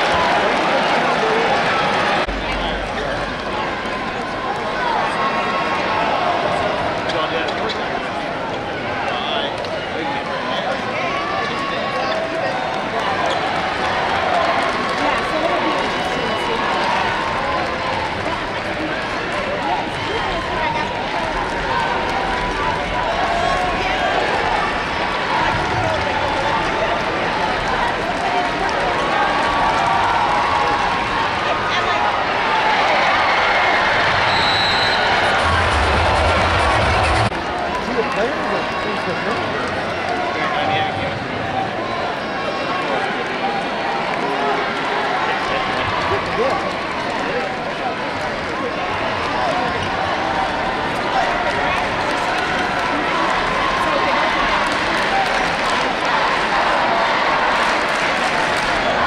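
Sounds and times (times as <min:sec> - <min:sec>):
crowd cheering and shouting: 0:00.0 - 0:59.0.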